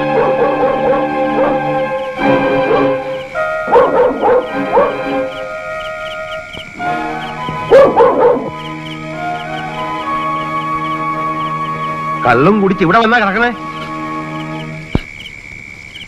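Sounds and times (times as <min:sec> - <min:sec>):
dog barking: 0:00.0 - 0:01.8, 0:02.6 - 0:03.0, 0:03.7 - 0:05.2, 0:07.7 - 0:08.5
film score with ticking: 0:00.0 - 0:16.0.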